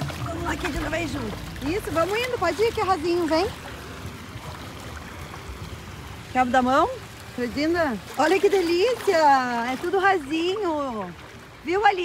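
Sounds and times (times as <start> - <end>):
low uneven rumble: 0.0 - 11.8
water splashing around feet: 0.0 - 12.0.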